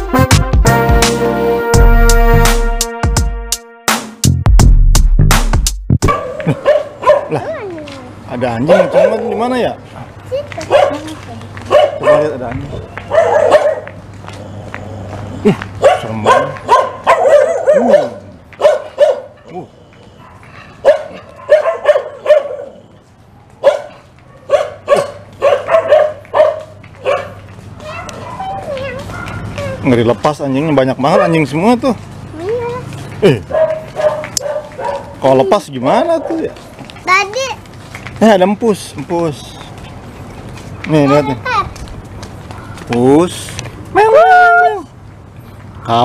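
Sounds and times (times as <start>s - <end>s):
dogs barking loudly: 6.0s - 7.6s, 8.5s - 9.8s, 10.6s - 29.8s, 31.0s - 31.8s, 32.9s - 36.8s, 42.4s - 42.9s.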